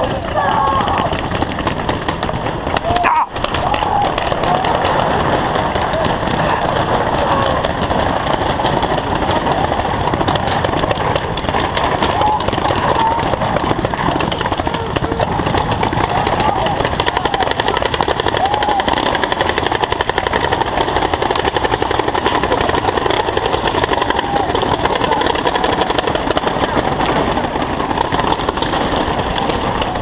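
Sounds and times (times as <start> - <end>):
paintball markers popping: 0.0 - 30.0
players shouting: 0.0 - 30.0.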